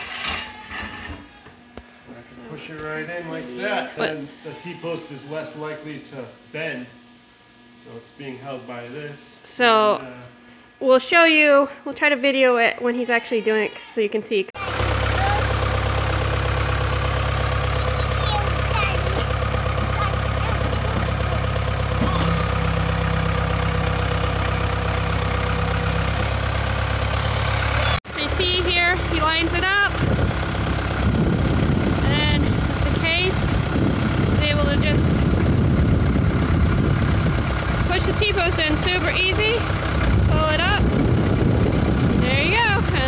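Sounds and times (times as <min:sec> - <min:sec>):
diesel engine idling: 0:14.6 - 0:43.0.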